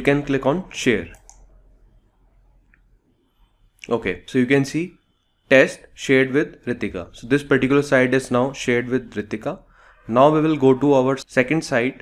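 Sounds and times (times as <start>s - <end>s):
person speaking: 0.0s - 1.4s, 3.8s - 12.0s
computer mouse click: 1.0s - 1.5s.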